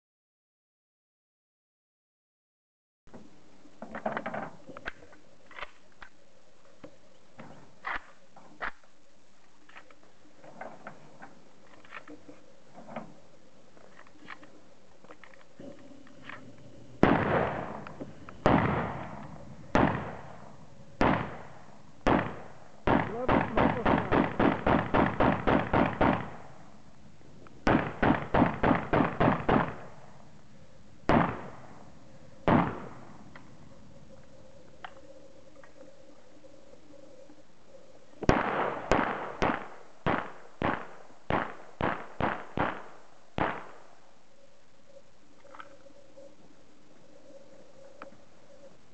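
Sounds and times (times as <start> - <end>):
rifle shots with echo: 17.0 - 26.7, 27.6 - 30.2, 31.1 - 33.3, 38.2 - 44.0.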